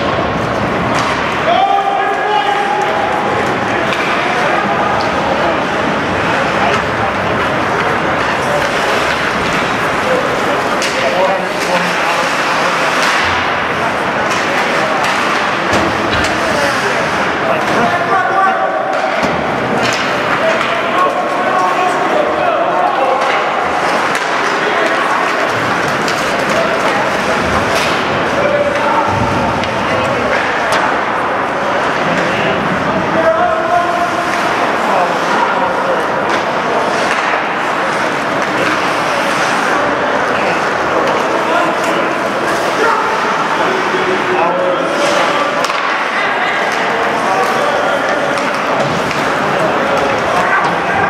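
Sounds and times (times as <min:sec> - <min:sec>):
skating noise: 0:00.0 - 0:51.0
spectators' voices: 0:00.0 - 0:51.0
sticks and puck clacking on boards: 0:00.0 - 0:51.0.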